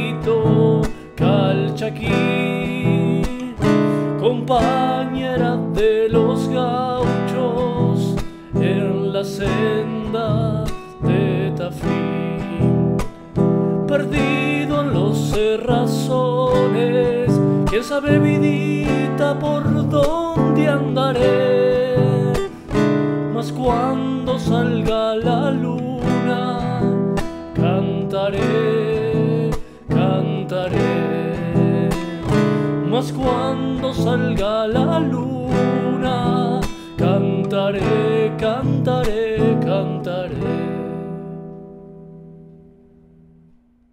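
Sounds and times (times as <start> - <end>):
man singing: 0.0 - 41.4
nylon-string guitar strummed: 0.0 - 43.9.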